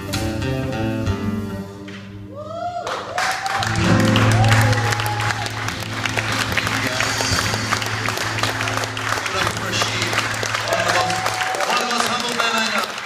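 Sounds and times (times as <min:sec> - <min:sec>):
audience applause: 0:02.6 - 0:13.0
band sustained notes: 0:03.9 - 0:13.0.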